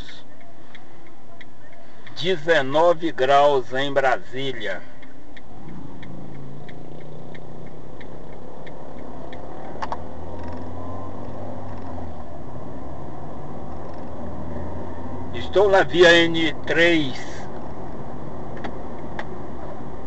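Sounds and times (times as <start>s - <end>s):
car engine and road noise: 0.0s - 20.0s
light ticking: 0.1s - 12.3s.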